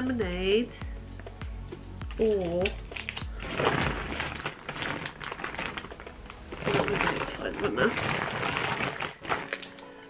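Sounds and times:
plastic wrappers crinkling: 2.0s - 10.0s.

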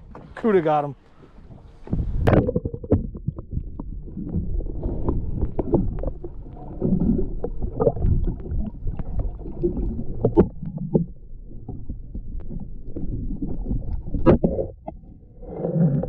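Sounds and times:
underwater rumbling and gurgling: 1.2s - 16.0s
underwater clicks and knocks: 1.4s - 16.0s.

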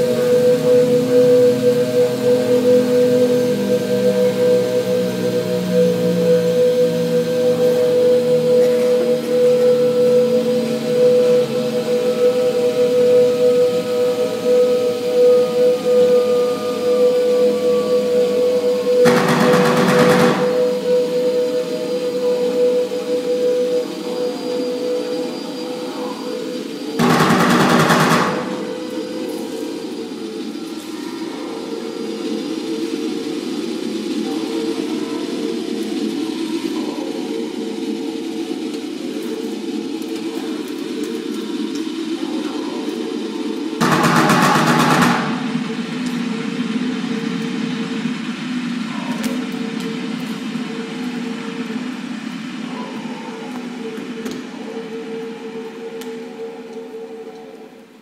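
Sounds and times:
drone with held tones: 0.0s - 37.4s, 43.8s - 57.8s
rattling noise bursts: 18.9s - 21.0s.

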